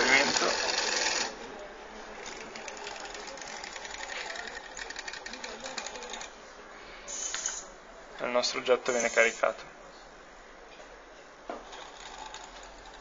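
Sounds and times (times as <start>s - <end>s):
small electric motor clattering: 0.0s - 1.3s.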